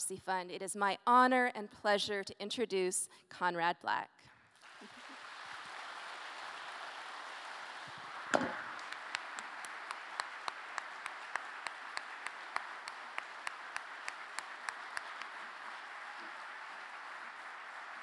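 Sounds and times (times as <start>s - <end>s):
audience applauding: 4.5s - 18.0s
close sharp hand claps: 4.6s - 18.0s.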